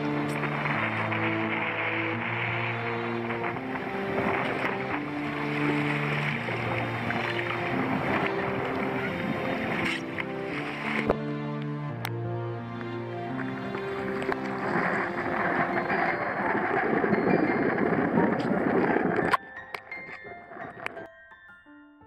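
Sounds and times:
choppy sea water rushing: 0.0s - 21.0s
wind: 0.0s - 21.1s
slow background music: 0.0s - 22.0s.

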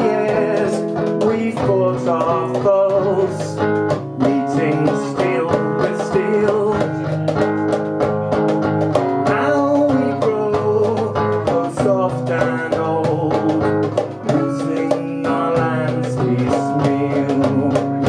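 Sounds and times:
acoustic folk music on guitars: 0.0s - 18.0s.

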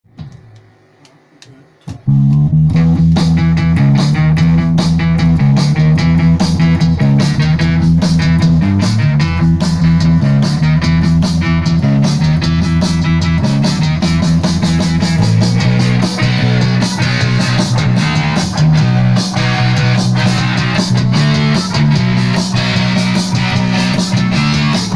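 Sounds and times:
drum kit driving beat: 1.9s - 24.9s
electric guitar: 1.9s - 24.9s
heavy bass notes: 2.1s - 24.9s.

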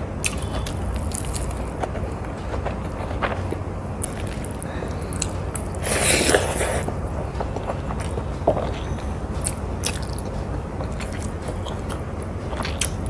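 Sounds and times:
mouth chewing food: 0.2s - 13.0s.

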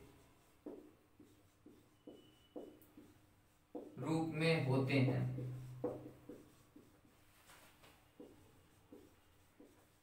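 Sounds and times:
marker writing on whiteboard: 0.0s - 10.0s.

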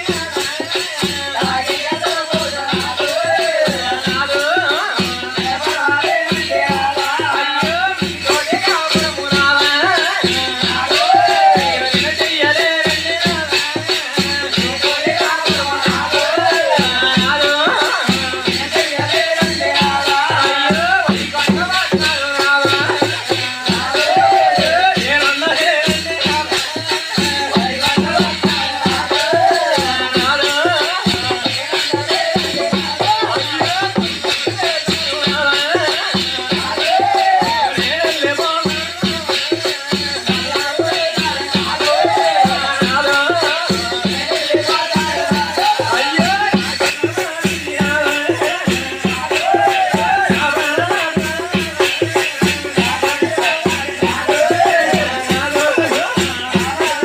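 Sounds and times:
drums beating: 0.0s - 57.0s
hand cymbals clashing: 0.0s - 57.0s.

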